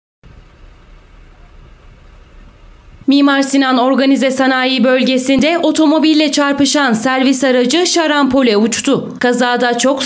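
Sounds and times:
vehicle engine rumble from cabin: 0:00.2 - 0:03.1.

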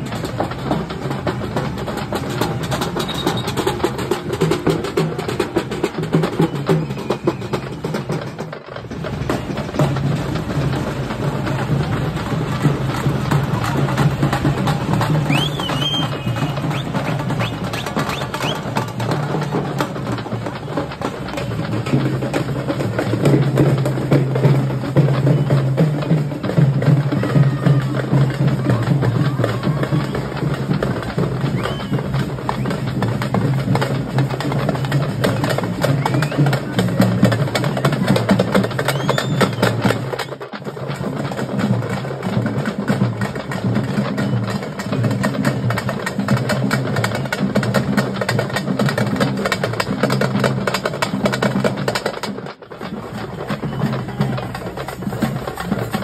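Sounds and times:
drums in fast rhythm: 0:00.0 - 0:56.0.

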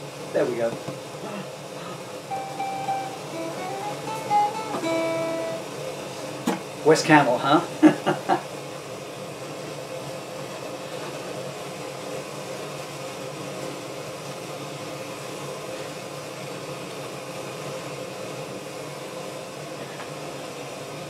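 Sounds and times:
amplifier hiss and hum: 0:02.2 - 0:08.0
faint steady tone: 0:02.3 - 0:05.6.

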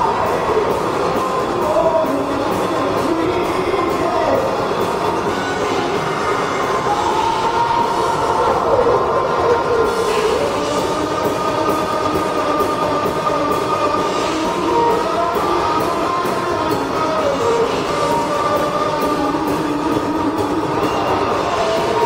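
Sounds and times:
distorted electric guitar lead: 0:00.0 - 0:22.0
drums and cymbals: 0:00.0 - 0:22.0.

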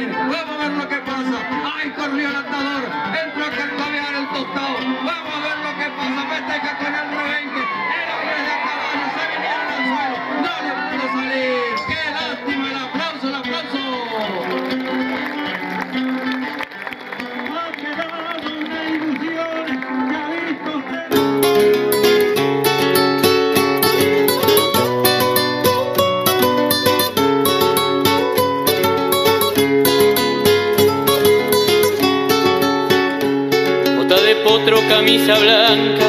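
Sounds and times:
people's voices and calls: 0:00.0 - 0:21.3
acoustic guitars playing folk: 0:00.0 - 0:36.0.

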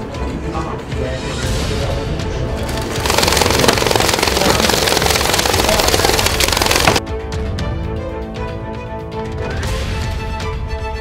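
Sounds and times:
dense rushing noise with flutter: 0:02.6 - 0:07.0.

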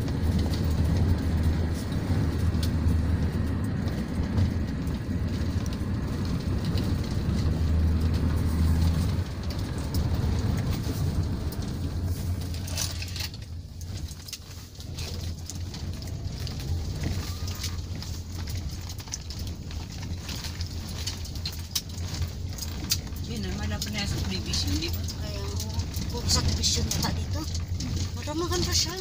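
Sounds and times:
car engine and tyre rumble: 0:00.0 - 0:29.0
wind noise: 0:00.0 - 0:29.0.

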